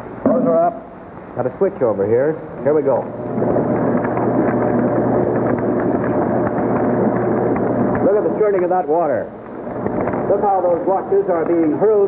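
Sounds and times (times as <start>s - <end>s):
low motor hum: 2.4s - 11.8s.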